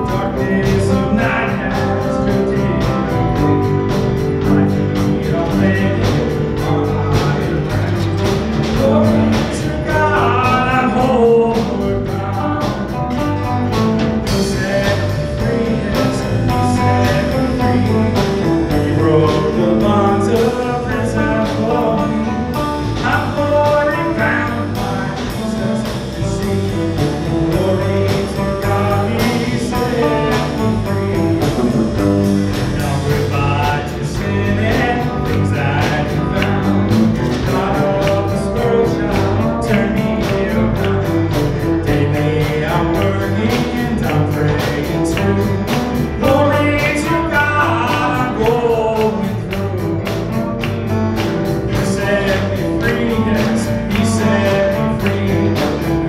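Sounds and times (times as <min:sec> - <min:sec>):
people singing: 0:00.0 - 0:13.0, 0:14.2 - 0:50.8, 0:51.5 - 0:56.0
acoustic guitar: 0:00.0 - 0:56.0
electric bass: 0:00.0 - 0:56.0
electric guitar: 0:00.0 - 0:56.0
keyboard: 0:00.0 - 0:56.0.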